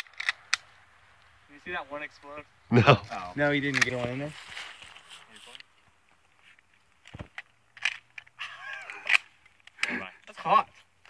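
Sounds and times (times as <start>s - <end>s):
man laughing: 2.7s - 3.1s, 8.4s - 9.2s.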